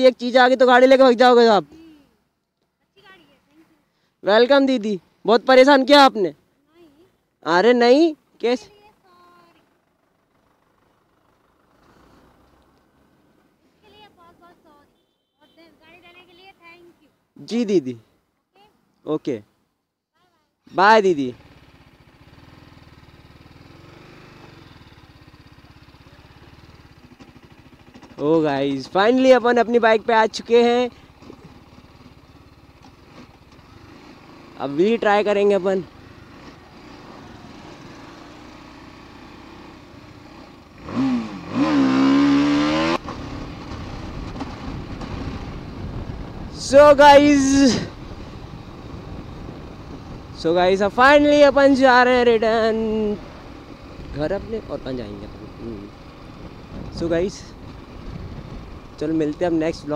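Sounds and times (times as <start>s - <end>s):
motorcycle engine running at low revs: 9.6s - 13.0s, 21.0s - 59.9s
wind rush: 43.8s - 50.4s.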